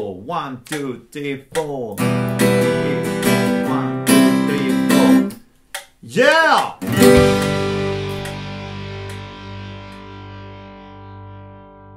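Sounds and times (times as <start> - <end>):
guitar chord ringing: 6.9 - 11.9.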